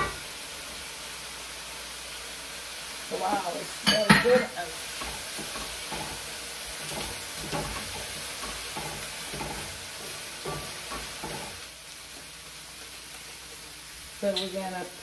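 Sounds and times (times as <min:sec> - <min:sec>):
vegetables sizzling in oil: 0:00.0 - 0:15.0
wooden spoon scraping and stirring: 0:04.9 - 0:13.7.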